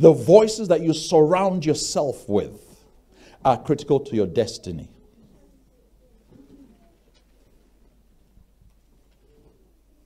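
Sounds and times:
faint low murmur: 4.6s - 10.0s.

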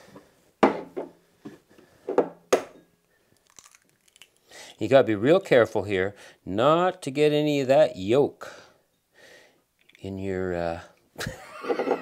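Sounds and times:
egg cracking: 3.4s - 4.5s.

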